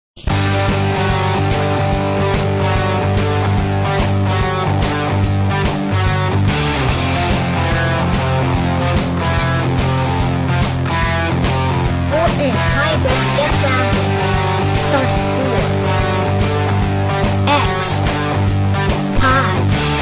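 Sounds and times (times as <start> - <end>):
instrumental rock music: 0.2 - 20.0.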